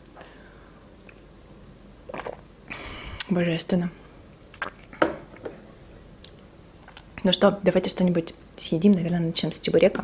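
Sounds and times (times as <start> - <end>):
person gulping: 2.1 - 3.4, 4.5 - 5.7
breathy exhale: 2.7 - 3.3.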